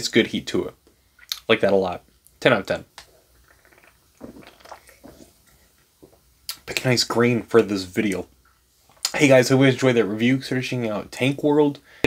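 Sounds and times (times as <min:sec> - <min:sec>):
person gulping and swallowing: 0:03.0 - 0:06.6.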